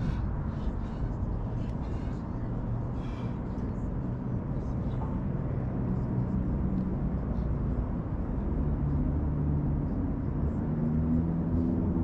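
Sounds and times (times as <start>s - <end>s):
faint voices: 0.0s - 6.6s
low outdoor rumble: 0.0s - 12.0s.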